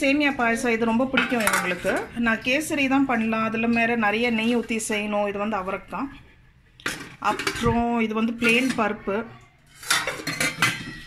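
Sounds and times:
metal pots and lids clattering: 0:00.9 - 0:02.4, 0:06.8 - 0:09.0, 0:09.7 - 0:11.0.

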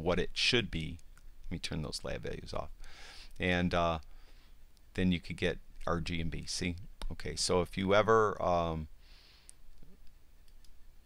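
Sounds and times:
computer mouse clicks: 0:09.4 - 0:10.8.

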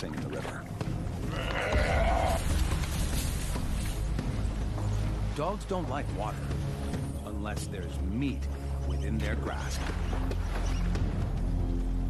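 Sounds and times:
water splashing: 0:00.0 - 0:11.7.

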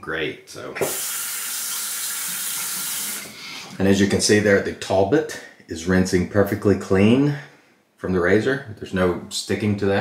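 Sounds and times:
water running from a sink tap: 0:00.8 - 0:03.3
razor rinsed under water: 0:00.8 - 0:03.4.

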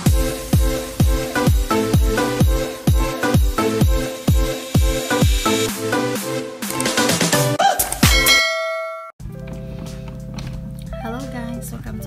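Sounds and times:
bell-like ding: 0:08.1 - 0:09.2
soft background music: 0:09.2 - 0:12.0.

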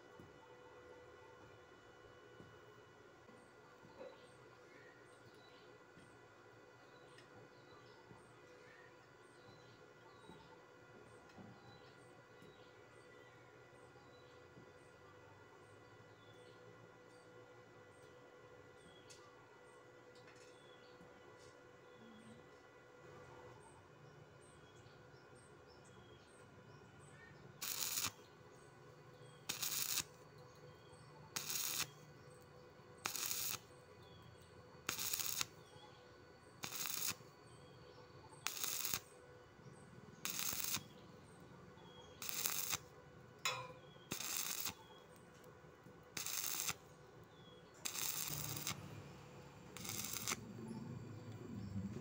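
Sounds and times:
welding arc crackling: 0:27.6 - 0:28.2, 0:29.4 - 0:30.2, 0:31.3 - 0:32.0, 0:33.0 - 0:33.7, 0:34.8 - 0:35.6, 0:36.6 - 0:37.4, 0:38.4 - 0:39.1, 0:40.2 - 0:41.0, 0:42.2 - 0:42.9, 0:43.5 - 0:44.8, 0:46.1 - 0:46.9, 0:47.8 - 0:51.4.

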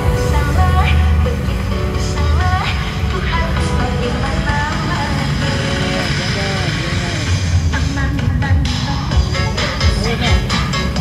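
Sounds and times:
loud music with heavy bass: 0:00.0 - 0:11.0
voice over music: 0:00.0 - 0:11.0.

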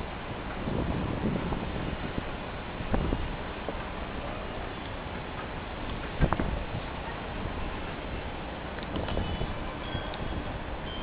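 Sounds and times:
wind buffeting microphone: 0:00.0 - 0:11.0
faint short high tones: 0:09.2 - 0:11.0.

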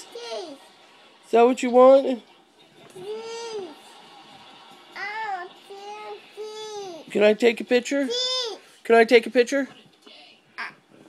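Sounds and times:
toddler whining: 0:03.0 - 0:03.8.

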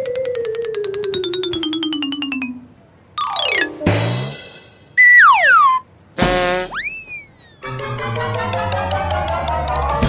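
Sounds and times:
whistle tone sliding down: 0:05.0 - 0:05.8, 0:06.7 - 0:07.7
cartoon burst: 0:05.0 - 0:07.6.

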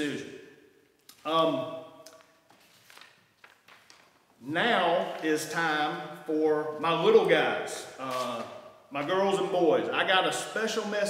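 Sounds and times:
paper sheets rustling: 0:02.1 - 0:04.3, 0:08.0 - 0:08.6.

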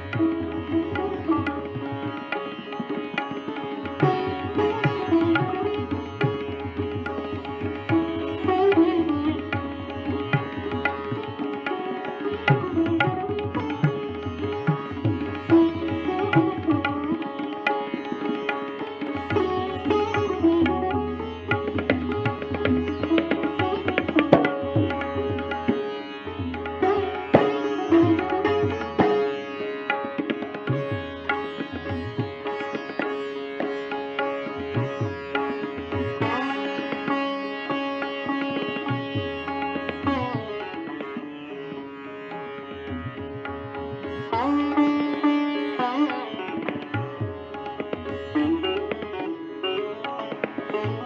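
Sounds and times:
sitar playing: 0:00.0 - 0:51.0.

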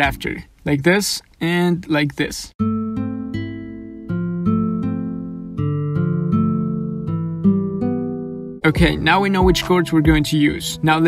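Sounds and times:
nylon-string guitar broken chords: 0:02.6 - 0:11.0.

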